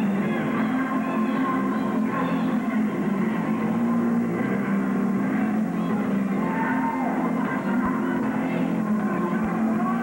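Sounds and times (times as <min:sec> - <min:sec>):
rock music: 0:00.0 - 0:10.0.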